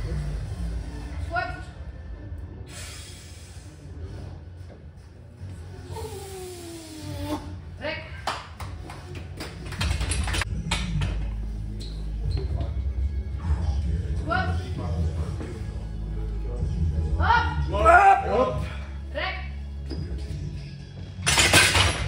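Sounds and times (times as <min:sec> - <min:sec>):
background music: 0:05.7 - 0:22.0.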